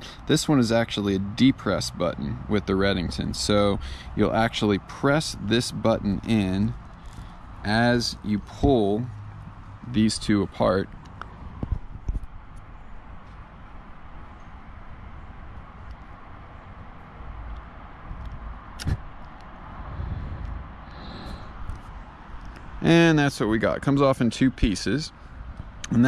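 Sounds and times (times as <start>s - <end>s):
steady background noise: 0.0s - 26.0s.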